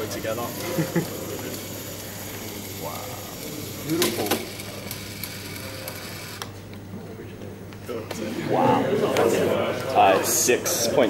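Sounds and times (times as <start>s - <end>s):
small electric motor humming: 0.0s - 6.5s.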